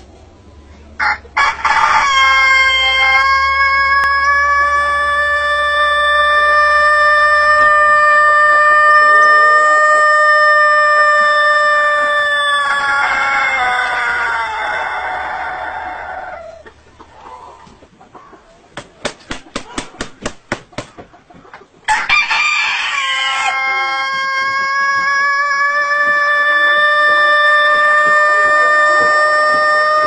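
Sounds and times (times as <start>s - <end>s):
rooster crowing: 1.0s - 16.7s, 21.9s - 30.0s.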